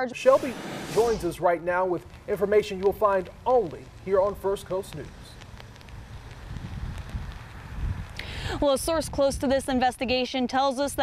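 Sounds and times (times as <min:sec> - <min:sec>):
wind buffeting microphone: 0:00.4 - 0:10.1.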